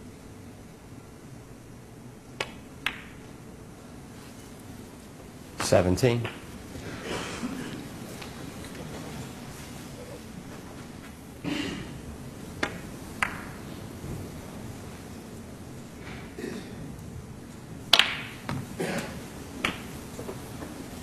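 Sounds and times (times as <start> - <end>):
snooker balls clicking: 2.2 - 3.6, 4.2 - 21.0
cue striking ball: 2.4 - 3.3, 6.2 - 8.4, 12.5 - 14.2, 17.9 - 20.8
balls knocking as they roll: 2.4 - 3.4, 5.6 - 11.2, 12.5 - 14.5, 17.8 - 21.0.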